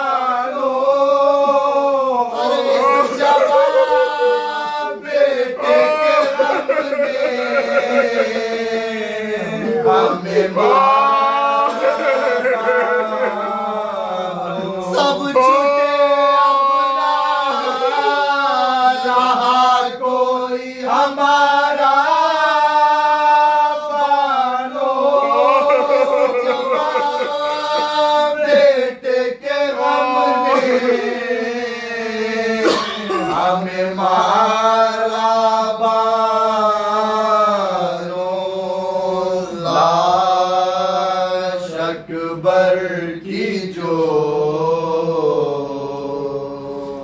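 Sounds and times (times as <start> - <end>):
men chanting in unison: 0.0 - 47.0.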